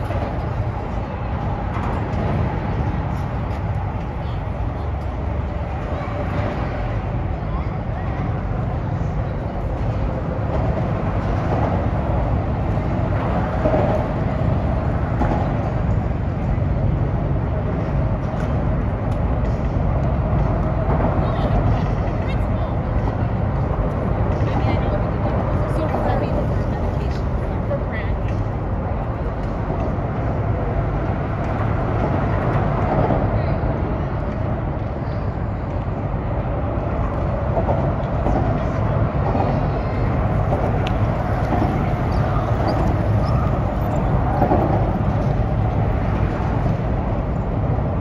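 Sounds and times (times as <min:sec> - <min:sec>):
city traffic rumble: 0:00.0 - 0:48.0.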